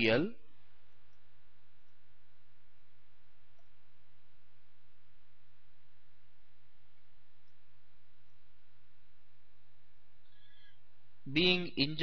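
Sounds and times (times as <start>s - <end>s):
background hiss: 0.0s - 12.0s
low electrical hum: 0.0s - 12.0s.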